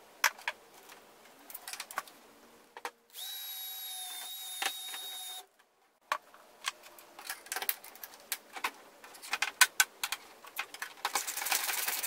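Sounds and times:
power drill drilling into plastic: 3.2 - 5.4.

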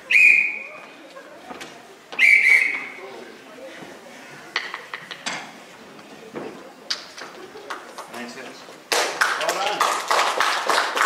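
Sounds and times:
referee's whistle blast: 0.1 - 0.7, 2.2 - 2.9.

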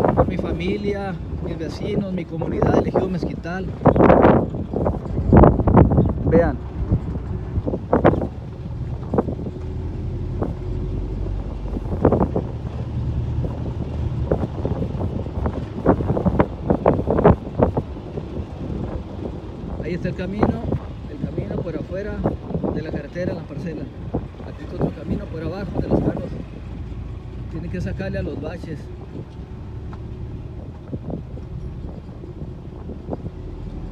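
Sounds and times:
car engine and road rumble: 0.0 - 33.9
wind on microphone: 0.0 - 33.9.

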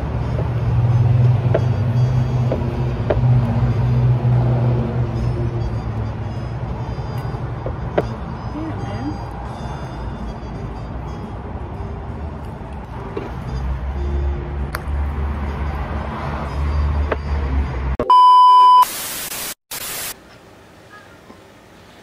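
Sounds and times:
traffic rumble: 0.0 - 18.0
electronic beep tone: 16.5 - 18.9
static hiss: 18.8 - 20.2.

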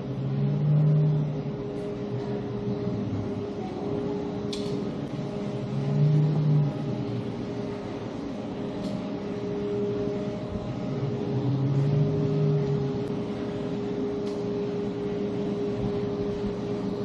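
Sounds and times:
machine hum: 0.0 - 17.0.

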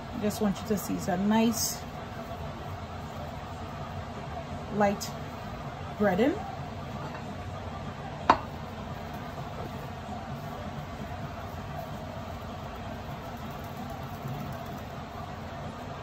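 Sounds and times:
low background hum: 0.0 - 16.0.

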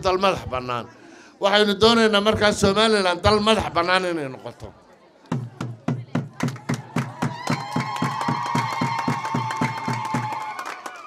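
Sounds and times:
crowd clapping in rhythm: 6.2 - 11.0.

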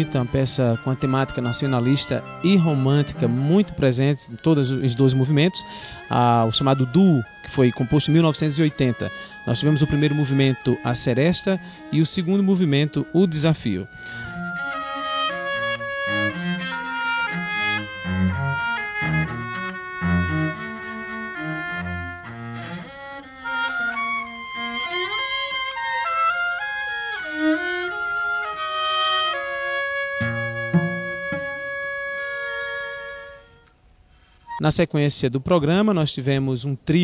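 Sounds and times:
oboe melody: 0.0 - 34.8
low instrument short detached notes: 30.2 - 32.2.

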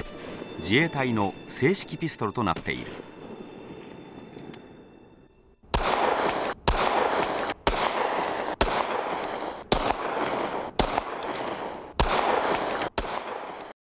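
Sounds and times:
pistol shots with rolling echo: 5.6 - 13.7.

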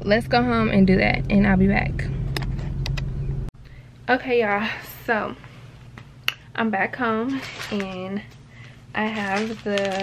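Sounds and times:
car engine hum: 0.0 - 3.5.

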